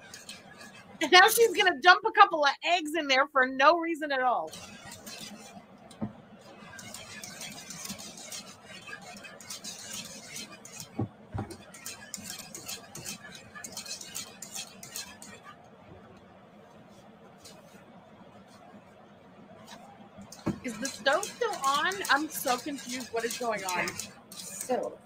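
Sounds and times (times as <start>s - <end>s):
whisk scraping a pan: 0.0s - 1.9s, 4.4s - 5.7s, 6.4s - 15.6s, 19.6s - 25.0s.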